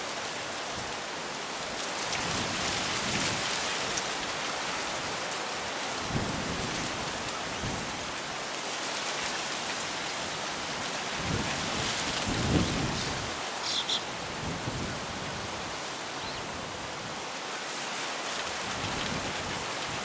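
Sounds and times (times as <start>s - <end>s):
wind buffeting microphone: 11.1s - 13.5s
bird chirps: 13.6s - 14.1s.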